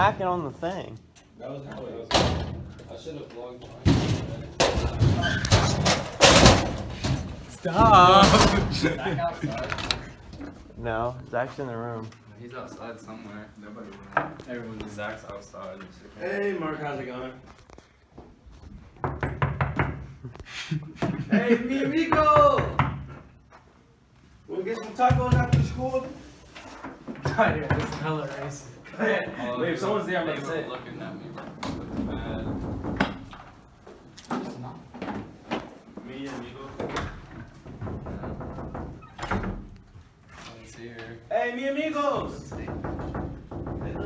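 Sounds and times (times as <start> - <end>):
fists banging on a door: 37.7 - 39.5, 42.3 - 44.0
sharp knocks: 42.4 - 44.0.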